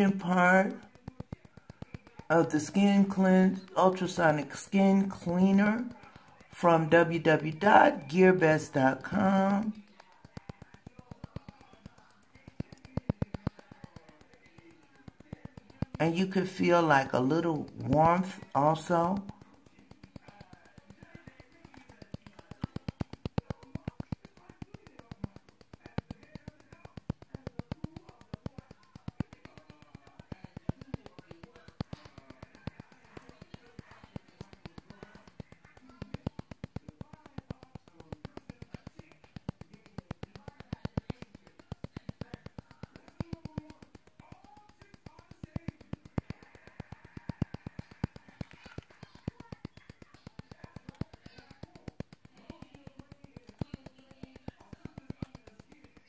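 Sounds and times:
faint background sound: 0.0 - 56.0
rapid uneven clicking: 0.0 - 56.0.

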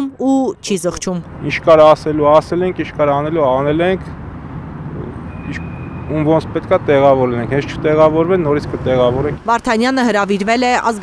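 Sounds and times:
distant city traffic rumble: 0.0 - 11.0.

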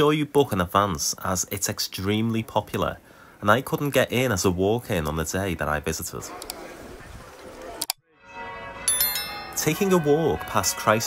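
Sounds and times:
bell ringing: 8.7 - 10.7.

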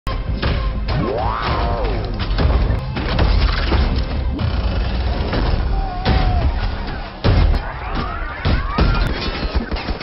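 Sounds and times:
film music: 0.1 - 10.0.

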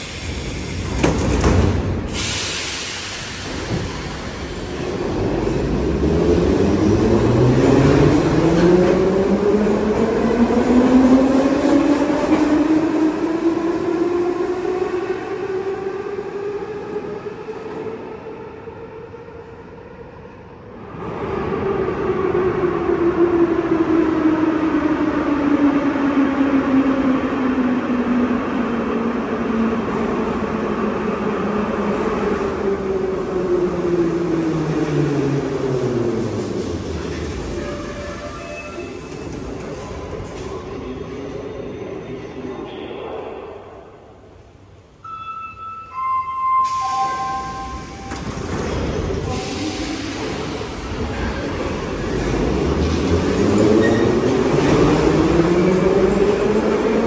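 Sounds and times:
metro train braking whine: 0.0 - 27.4, 33.9 - 39.7, 44.8 - 52.4.

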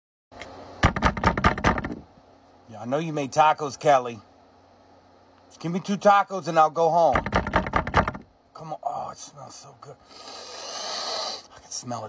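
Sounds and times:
person sniffing deeply: 10.0 - 11.5.

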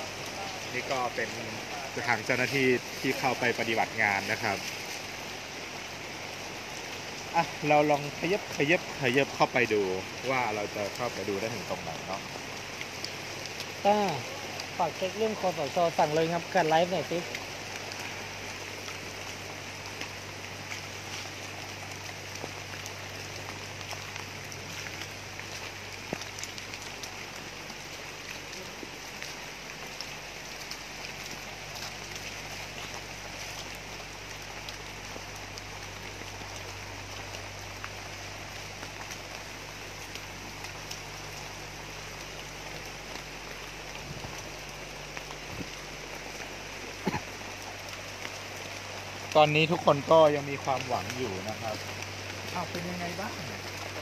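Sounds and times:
steady rain falling: 0.0 - 54.0.

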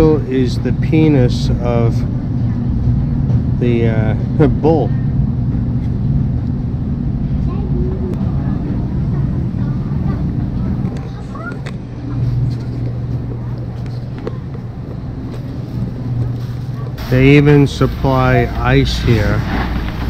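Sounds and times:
steady low hum: 0.0 - 20.0
faint voices: 7.2 - 19.7.

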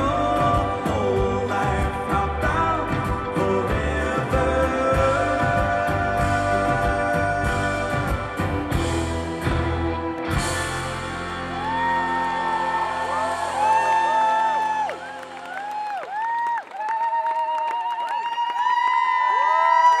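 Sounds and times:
crowd cheering and whistling: 7.8 - 20.0
crowd applause: 9.5 - 20.0.

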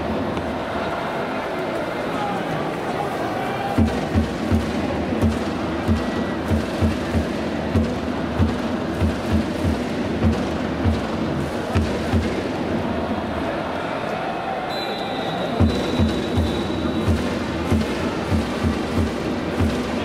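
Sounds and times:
crowd noise: 0.0 - 20.0
drums thumping: 3.7 - 12.7, 15.5 - 20.0.

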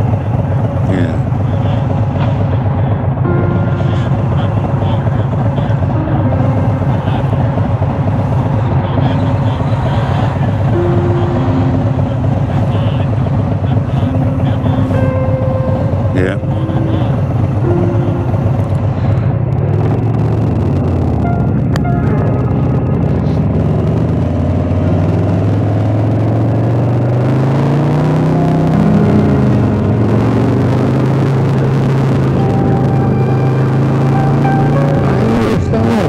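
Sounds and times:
motorcycle engine running: 0.0 - 36.0.

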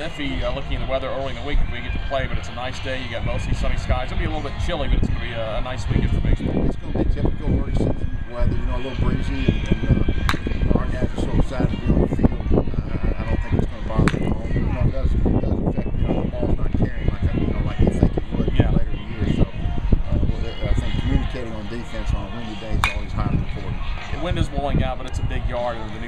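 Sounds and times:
man talking: 0.0 - 26.0
steady low rumble: 3.2 - 24.0.

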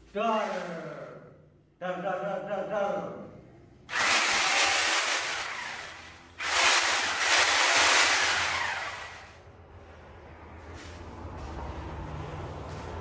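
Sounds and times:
power tool rushing noise: 3.9 - 9.4.

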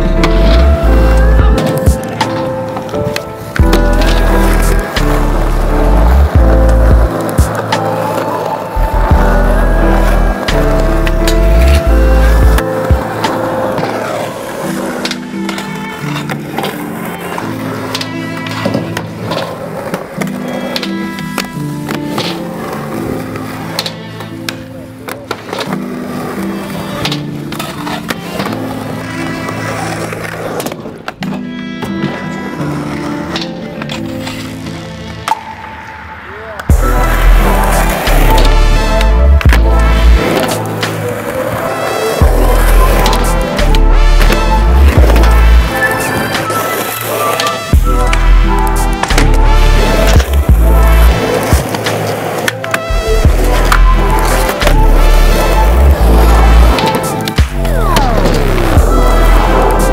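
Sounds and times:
skateboards rolling on concrete: 0.0 - 59.9
skateboard clacks: 1.4 - 35.6, 36.6 - 59.9
song with bass beat: 3.6 - 8.0, 8.9 - 13.4, 36.7 - 41.0, 42.0 - 45.9, 47.7 - 51.7, 52.9 - 59.9.

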